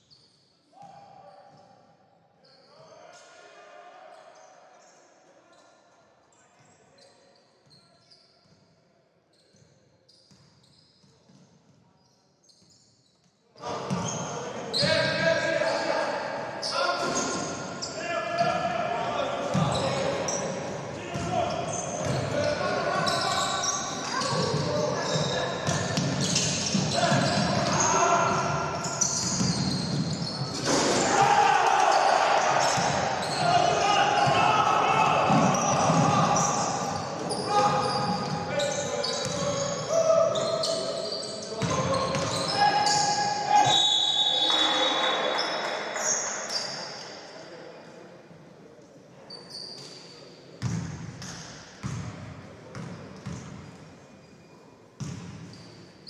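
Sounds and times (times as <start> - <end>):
sneakers squeaking: 6.6 - 8.6, 9.3 - 47.1, 49.3 - 56.0
players calling out: 13.6 - 46.7
basketball bouncing on court: 19.5 - 19.8, 24.3 - 27.8, 35.3 - 37.0, 39.2 - 39.5, 41.6 - 42.4, 50.6 - 53.6, 55.0 - 55.5.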